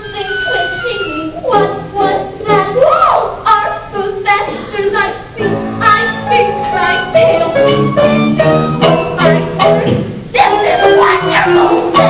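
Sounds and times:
young voice singing: 0.0s - 7.8s, 10.3s - 12.0s
instrumental accompaniment: 5.4s - 12.0s.

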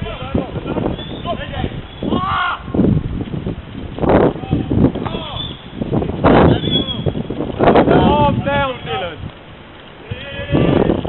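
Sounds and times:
footballers shouting: 1.2s - 2.8s, 10.0s - 11.0s.

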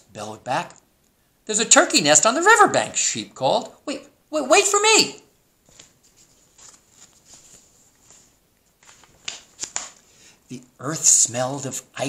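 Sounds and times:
paper page rustling: 5.6s - 10.1s
page crackling and clicking: 8.8s - 10.0s.

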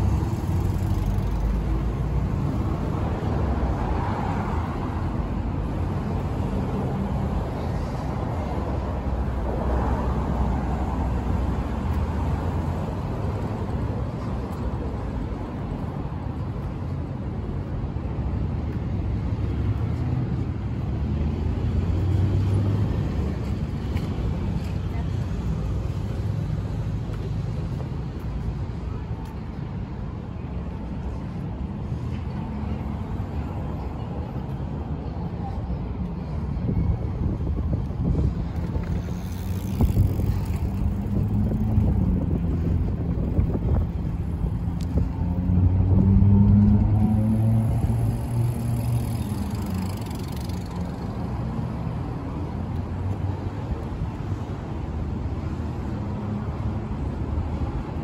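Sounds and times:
road traffic rumble: 0.0s - 58.0s.

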